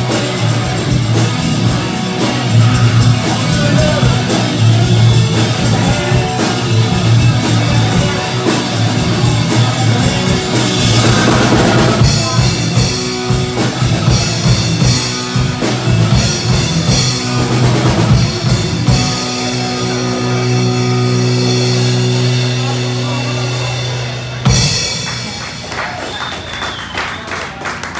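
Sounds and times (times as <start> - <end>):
live rock band playing: 0.0 - 27.9.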